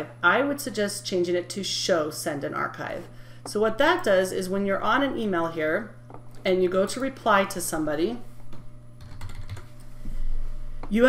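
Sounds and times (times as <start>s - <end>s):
computer keyboard keys clicking: 9.0s - 9.7s.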